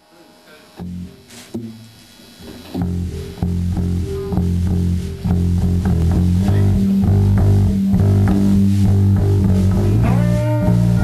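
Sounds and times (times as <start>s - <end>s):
electric bass low notes: 0.8s - 1.2s, 2.8s - 11.0s.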